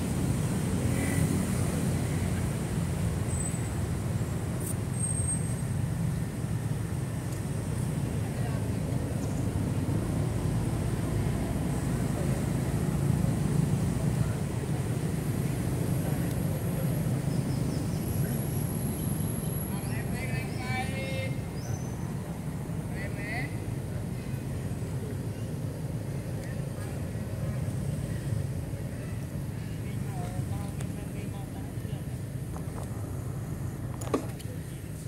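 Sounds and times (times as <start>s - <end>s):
low outdoor rumble: 0.0s - 35.0s.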